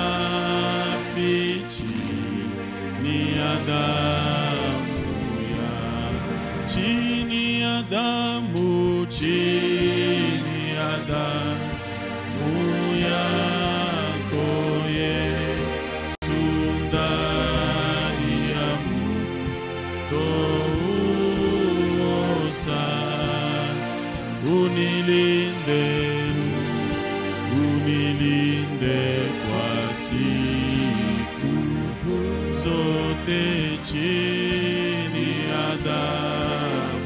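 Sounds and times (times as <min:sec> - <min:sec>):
low steady accompaniment: 0:00.0 - 0:37.0
man singing a hymn: 0:00.0 - 0:37.0.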